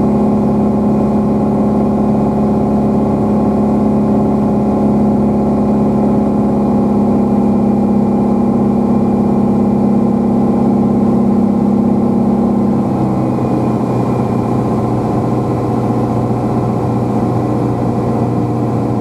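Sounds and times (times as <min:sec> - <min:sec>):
aircraft engine and propeller droning: 0:00.0 - 0:19.0.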